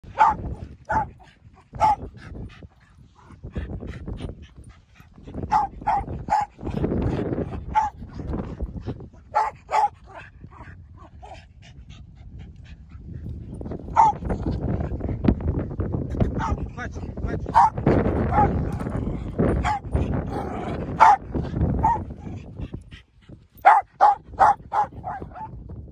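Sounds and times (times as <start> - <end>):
dog barking: 0.2 - 1.2, 1.8 - 2.0, 5.5 - 6.5, 7.7 - 8.0, 9.3 - 10.2, 13.9 - 14.2, 17.5 - 18.6, 19.6 - 22.0, 23.6 - 25.5.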